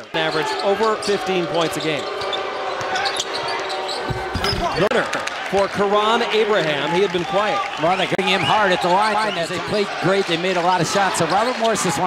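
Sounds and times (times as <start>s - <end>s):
sneakers squeaking: 0.2s - 4.9s.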